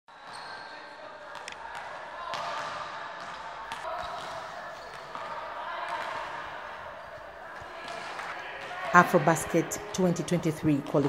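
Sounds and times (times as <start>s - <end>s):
balls bouncing on court: 0.2s - 11.0s.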